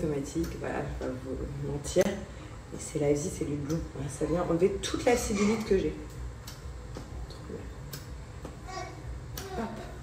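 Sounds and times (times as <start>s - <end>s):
massager motor humming: 0.0s - 10.0s
sharp clicks: 6.1s - 8.1s.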